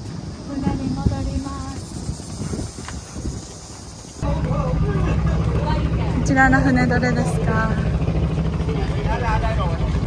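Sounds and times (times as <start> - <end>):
footsteps on stone: 0.0 - 4.7
people talking: 0.5 - 1.9, 4.2 - 7.9
boat engines idling: 3.2 - 10.0.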